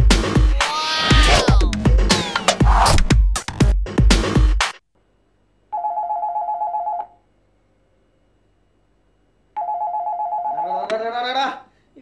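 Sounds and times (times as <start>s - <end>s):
man crying out: 0.4s - 1.8s
telephone ringing with electronic trill: 5.7s - 7.2s, 9.6s - 10.9s.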